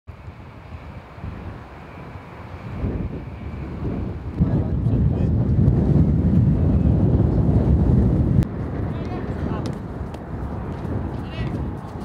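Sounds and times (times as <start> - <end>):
wind buffeting microphone: 0.1 - 12.0.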